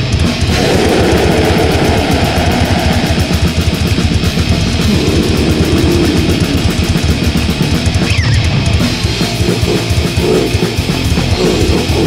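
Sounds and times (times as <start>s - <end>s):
distorted guitar and bass: 0.0s - 12.0s
fast dense drumming: 0.0s - 12.0s.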